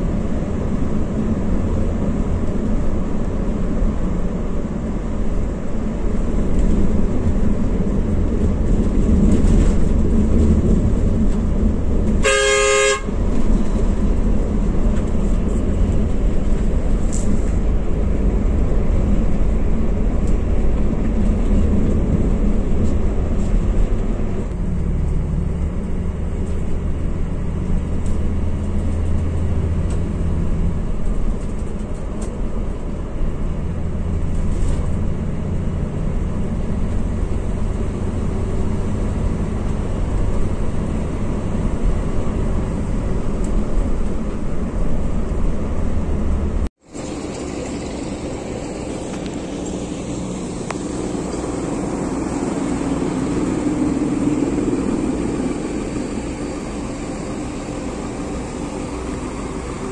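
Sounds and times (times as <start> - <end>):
coach engine and road noise: 0.0 - 59.9
vehicle horn: 12.2 - 13.2.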